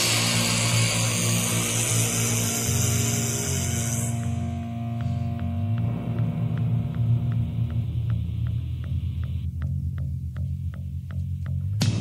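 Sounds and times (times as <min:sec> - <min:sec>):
distorted guitar noise: 0:00.0 - 0:12.0
pulsing low bass note: 0:00.0 - 0:12.0.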